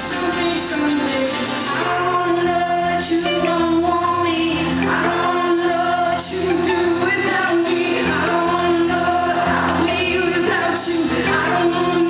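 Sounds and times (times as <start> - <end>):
guitars playing: 0.0 - 12.0
woman singing: 0.0 - 12.0.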